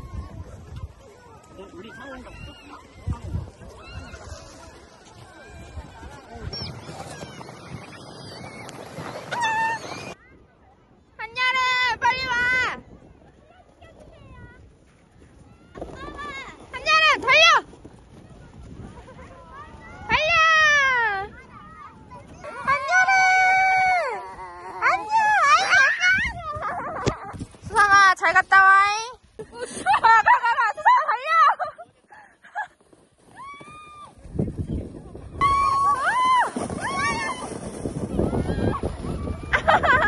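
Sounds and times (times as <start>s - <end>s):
sleds scraping over snow: 0.0s - 10.2s, 11.3s - 40.0s.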